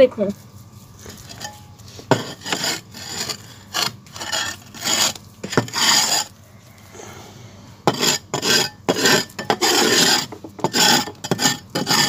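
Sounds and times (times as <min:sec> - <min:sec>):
soil scraped by hand: 0:00.9 - 0:06.4, 0:07.9 - 0:12.0.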